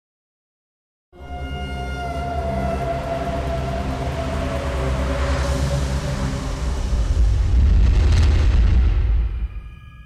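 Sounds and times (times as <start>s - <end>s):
deep sustained drone: 1.2s - 10.0s
rush of noise: 2.9s - 9.8s.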